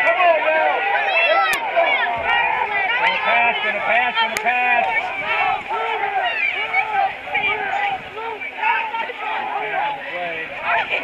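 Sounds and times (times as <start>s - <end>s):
crowd talking and shouting: 0.0s - 11.0s.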